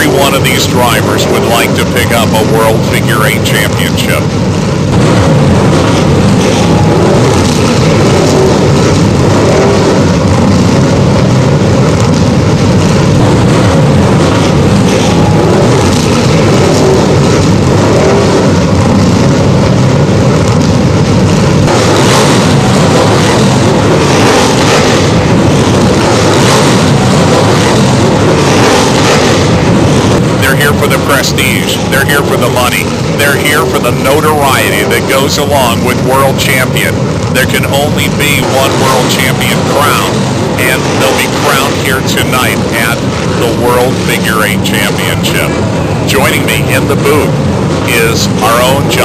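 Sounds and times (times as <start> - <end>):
race car engines rumbling: 0.0 - 49.0.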